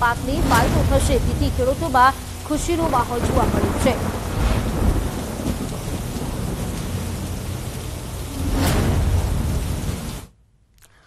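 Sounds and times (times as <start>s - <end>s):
deep low rumble: 0.0s - 10.3s
heavy rain falling: 0.0s - 10.3s.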